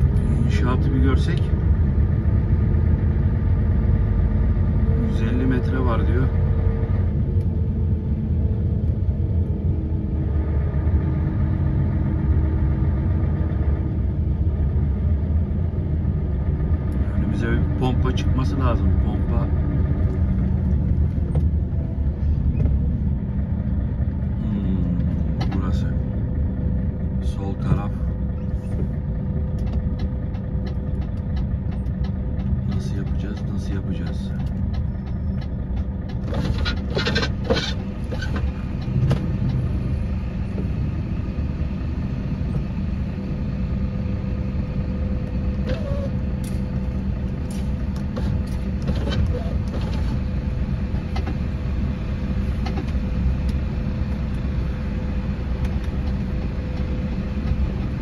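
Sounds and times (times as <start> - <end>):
truck diesel engine drone: 0.0 - 58.0.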